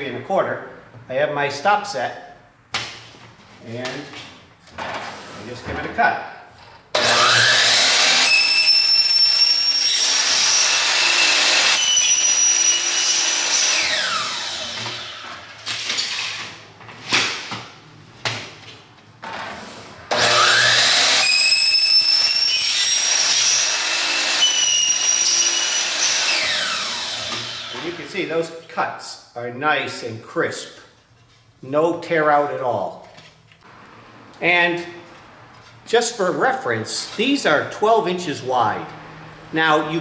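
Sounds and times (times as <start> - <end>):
miter saw cutting panel: 6.9 - 16.5, 20.1 - 28.1.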